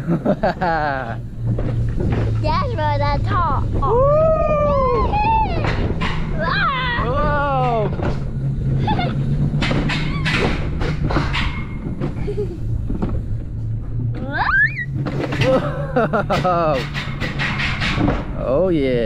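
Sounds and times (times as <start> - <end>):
steady low hum: 0.0 - 19.0
scattered knocks: 1.4 - 3.9, 5.0 - 6.6, 7.2 - 8.4, 9.4 - 12.3, 14.9 - 18.4
excited voices: 2.7 - 5.8, 6.4 - 8.0
high rising squeal: 2.9 - 10.8, 14.0 - 15.4.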